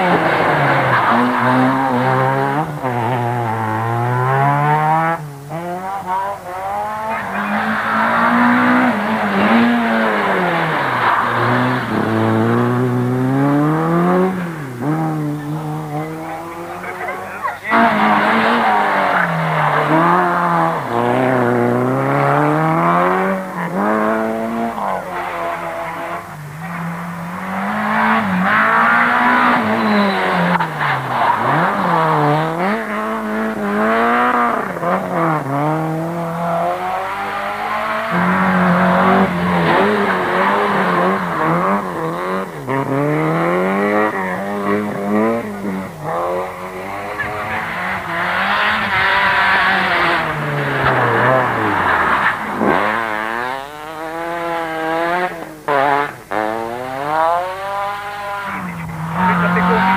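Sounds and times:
rally car engines revving: 0.0 - 59.9.

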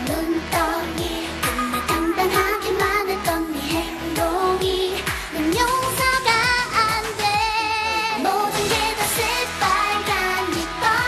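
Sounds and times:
woman singing pop song: 0.0 - 11.0.

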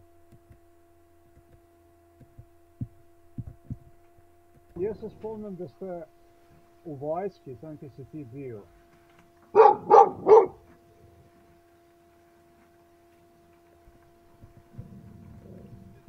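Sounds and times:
steady hum: 0.0 - 16.0
dog barking: 9.5 - 10.6
low rumble: 14.3 - 16.0.

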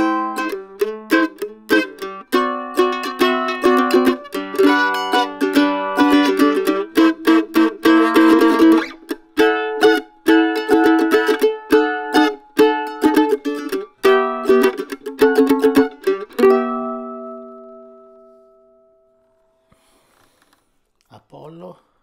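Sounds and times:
mandolin tremolo picking: 0.0 - 19.2
mandolin melody: 0.0 - 19.4.

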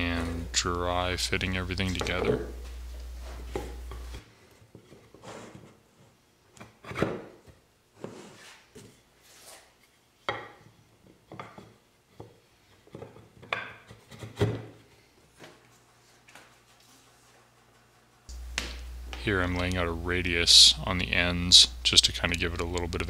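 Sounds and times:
low hum: 18.3 - 23.0.

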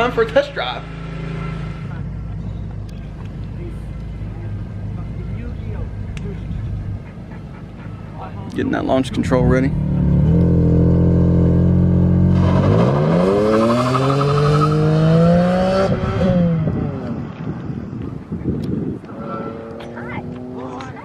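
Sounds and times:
car engine revving: 0.0 - 17.3, 18.6 - 21.0.

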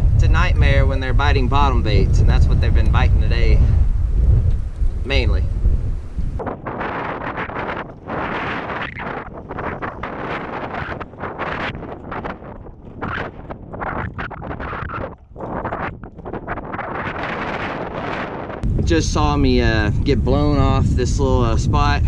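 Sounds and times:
gusty wind buffeting microphone: 0.0 - 22.0.

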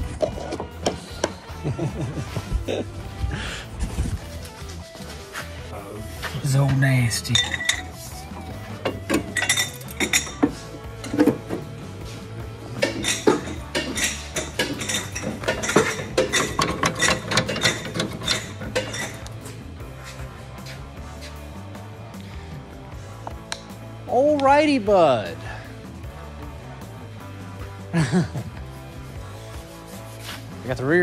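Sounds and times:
music playing: 0.0 - 31.0
metal tools clinking: 6.7 - 8.0, 8.8 - 11.5, 12.7 - 19.4.

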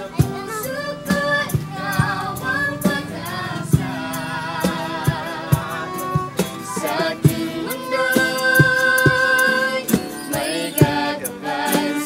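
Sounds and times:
group singing in chorus: 0.0 - 12.0
instrumental accompaniment: 0.0 - 12.0.

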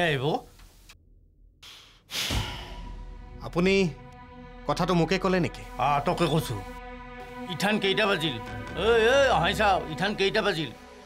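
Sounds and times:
man sighing: 1.6 - 3.0.

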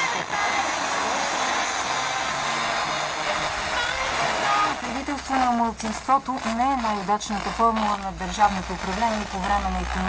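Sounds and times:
faint radio programme audio: 0.0 - 10.0
radio static hiss: 0.0 - 10.0.

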